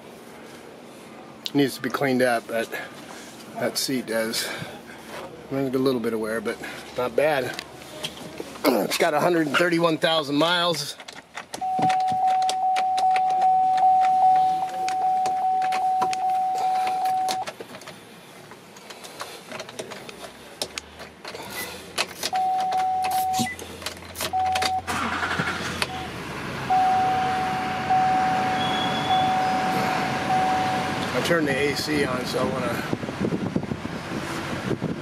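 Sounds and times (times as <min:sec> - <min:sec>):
electronic warning chime: 0:11.6 - 0:17.4, 0:22.4 - 0:23.6, 0:26.7 - 0:31.2
blower fan rushing air: 0:25.0 - 0:35.0.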